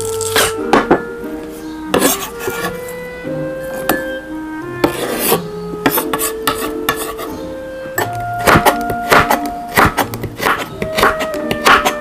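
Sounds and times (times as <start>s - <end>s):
knife cutting on wooden board: 1.9s - 2.9s, 4.8s - 7.4s, 8.0s - 12.0s
knife scraping on cutting board: 1.9s - 3.0s, 4.8s - 7.4s, 8.0s - 12.0s.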